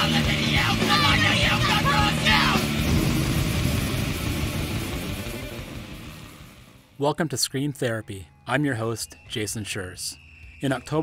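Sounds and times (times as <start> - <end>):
punk rock chord ringing out: 0.0 - 7.0.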